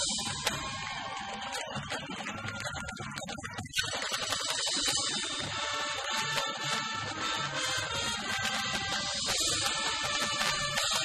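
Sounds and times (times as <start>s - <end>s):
marching band brass: 0.0s - 3.2s, 3.8s - 11.0s.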